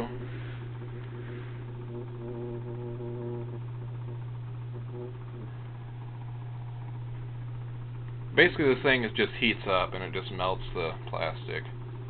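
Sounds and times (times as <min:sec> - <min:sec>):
laminator low hum: 0:00.0 - 0:12.0.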